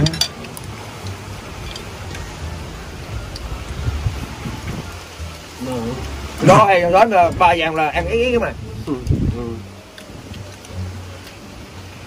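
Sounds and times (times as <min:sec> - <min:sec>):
wind buffeting microphone: 0:00.7 - 0:10.5.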